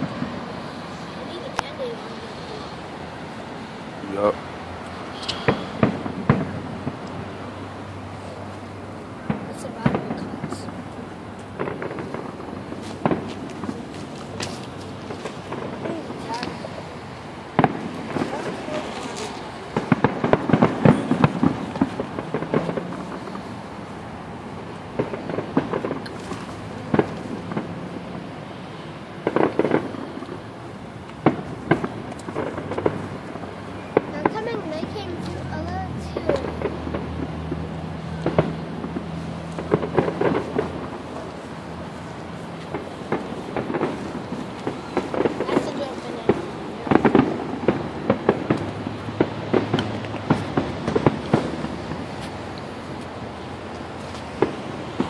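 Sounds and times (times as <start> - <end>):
fireworks bursting: 0.0 - 55.0.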